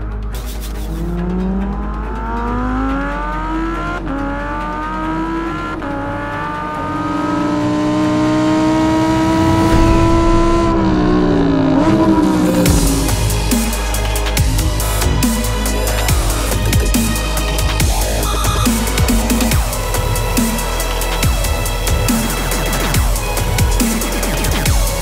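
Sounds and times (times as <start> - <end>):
car engine accelerating: 0.0 - 23.0.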